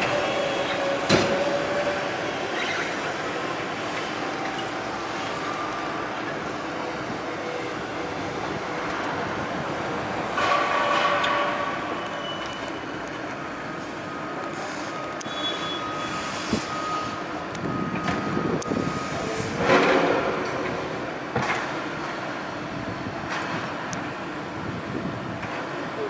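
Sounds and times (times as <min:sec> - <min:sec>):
metallic squealing: 0:00.0 - 0:03.2, 0:14.6 - 0:17.2
construction machinery running: 0:00.0 - 0:26.0.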